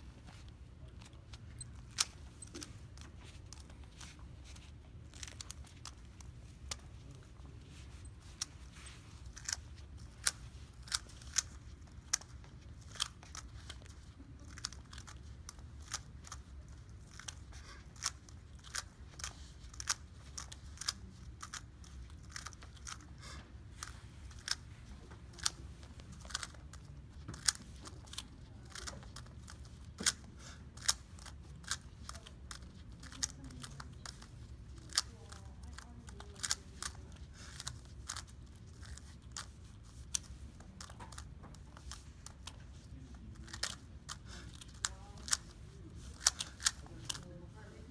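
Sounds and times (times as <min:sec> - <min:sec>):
low room hum: 0:00.0 - 0:47.9.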